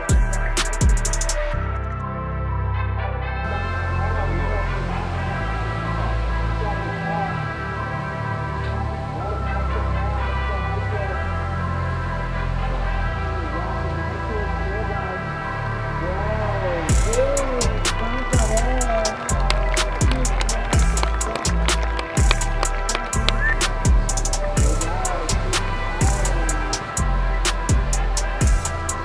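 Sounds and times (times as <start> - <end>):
drum beat: 0.1 - 1.3, 18.4 - 24.9
held music tones: 16.9 - 29.0.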